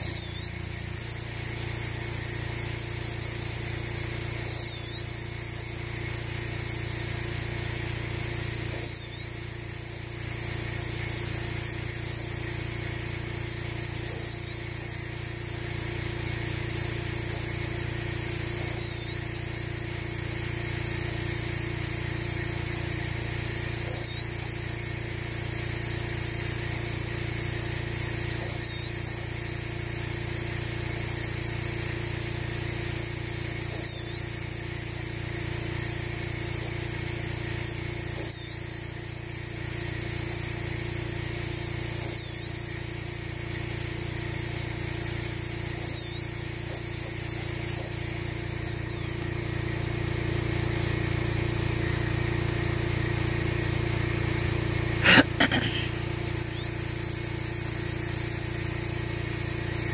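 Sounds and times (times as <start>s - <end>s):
rotary drill whining: 0.0s - 59.9s.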